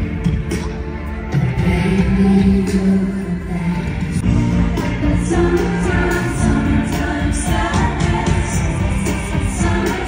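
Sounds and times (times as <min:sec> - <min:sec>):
amplified live music with singing: 0:00.0 - 0:10.0.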